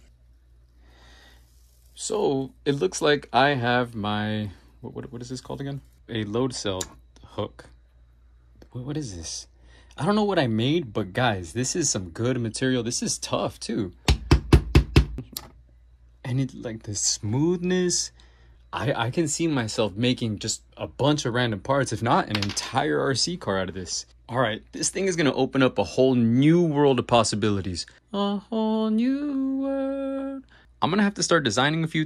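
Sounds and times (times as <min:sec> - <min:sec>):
low steady hum: 0:00.0 - 0:32.0
soft breath-like hiss: 0:00.5 - 0:02.1.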